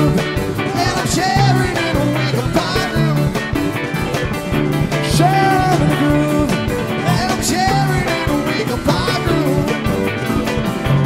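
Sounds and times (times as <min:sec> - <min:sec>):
electric guitar with bending pitches: 0:00.0 - 0:11.0
rock band playing: 0:00.0 - 0:11.0.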